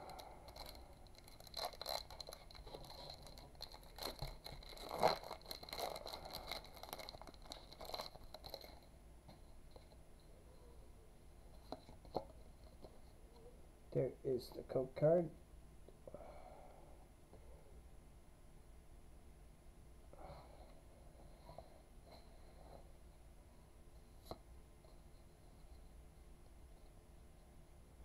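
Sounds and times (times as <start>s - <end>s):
foil wrapper tearing and crinkling: 0.0s - 8.8s.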